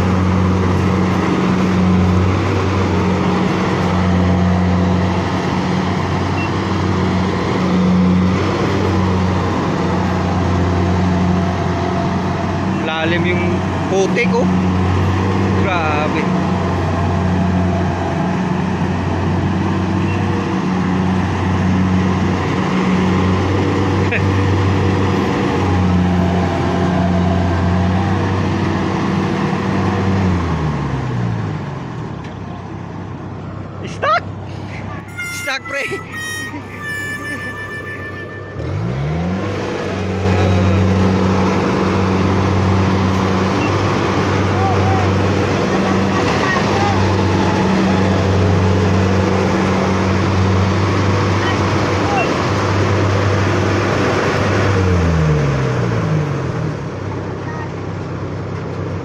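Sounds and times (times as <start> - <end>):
short high-pitched tones: 35.1 - 39.6.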